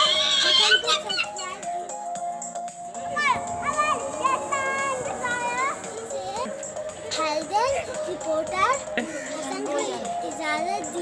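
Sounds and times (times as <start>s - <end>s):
background music with held note: 0.0s - 11.0s
children calling and chattering: 0.0s - 11.0s.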